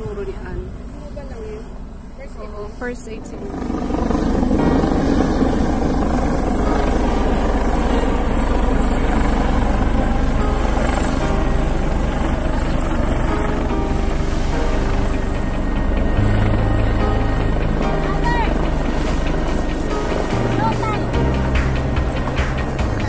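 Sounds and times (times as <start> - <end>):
helicopter flying low overhead: 0.0 - 23.0.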